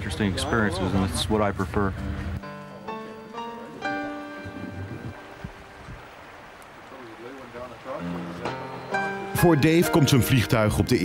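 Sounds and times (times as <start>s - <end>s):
fast-flowing river rushing: 3.6s - 10.5s.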